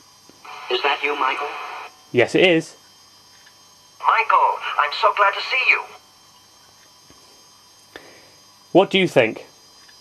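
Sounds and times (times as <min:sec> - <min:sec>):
high electronic whines: 0:00.0 - 0:02.6, 0:03.7 - 0:06.4.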